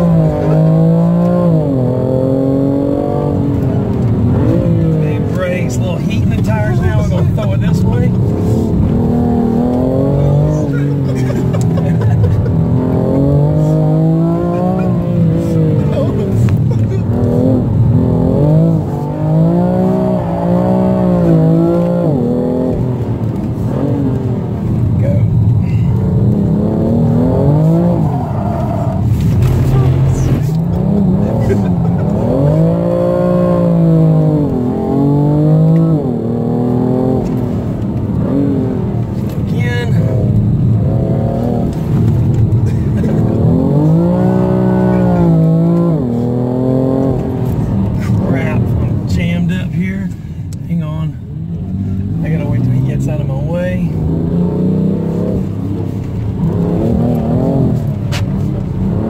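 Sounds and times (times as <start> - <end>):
car engine revving in cabin: 0.0 - 59.0.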